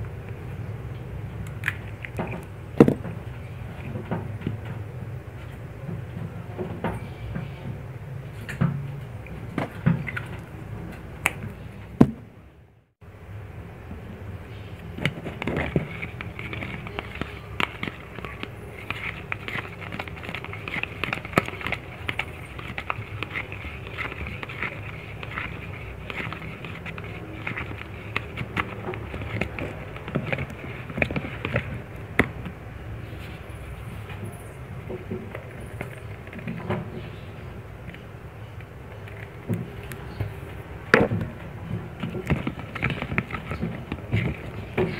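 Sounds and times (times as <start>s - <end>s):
spatula scraping in a plastic cup: 14.4s - 38.1s, 39.0s - 44.9s.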